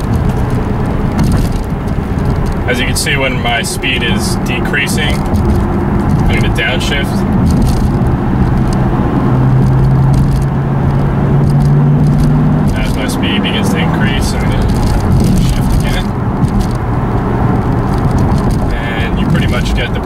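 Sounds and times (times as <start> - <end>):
car engine drone from cabin: 0.0 - 20.0.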